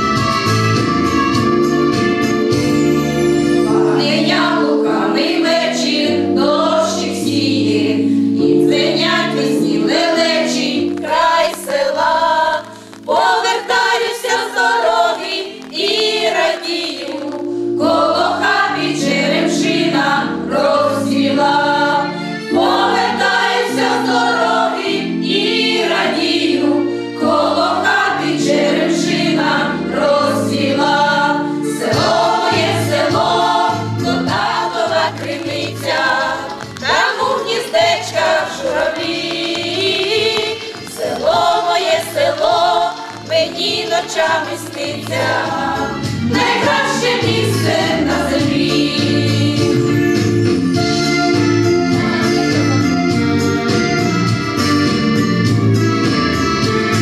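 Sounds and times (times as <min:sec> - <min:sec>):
women's choir singing: 0:03.7 - 0:50.2.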